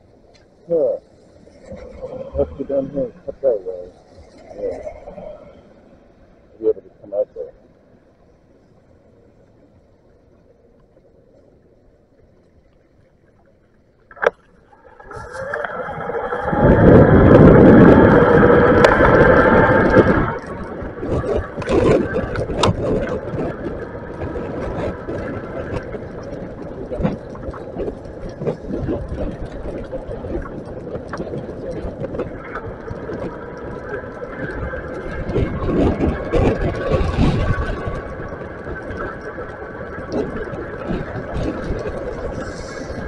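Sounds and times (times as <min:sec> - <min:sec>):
wind rushing on microphone: 0:15.0 - 0:43.0.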